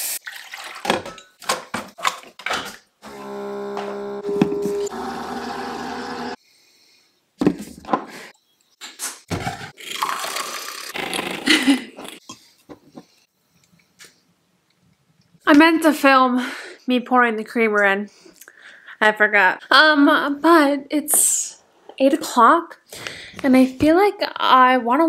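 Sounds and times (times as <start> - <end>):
coffee maker pump hum: 3.0 - 6.4.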